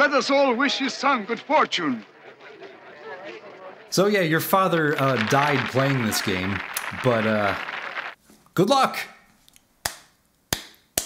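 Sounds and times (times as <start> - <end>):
hand claps: 4.7 - 8.2, 9.8 - 11.0.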